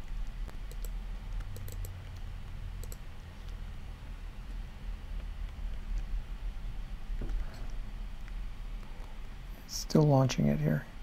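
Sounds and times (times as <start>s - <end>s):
computer mouse clicks: 0.0s - 3.6s
low steady hum: 0.0s - 11.0s.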